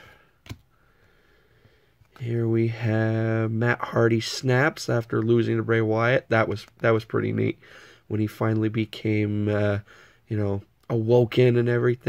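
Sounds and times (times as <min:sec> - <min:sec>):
trading cards shuffling click: 0:00.4 - 0:00.7.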